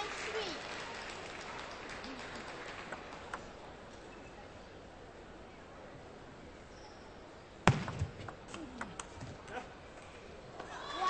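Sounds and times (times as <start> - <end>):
table tennis ball struck: 7.6 - 8.4.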